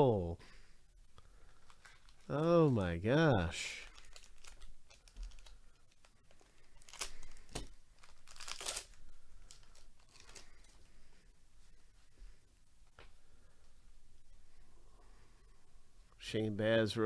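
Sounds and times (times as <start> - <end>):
wrapper tearing and crinkling: 1.4 - 3.0, 3.6 - 10.8.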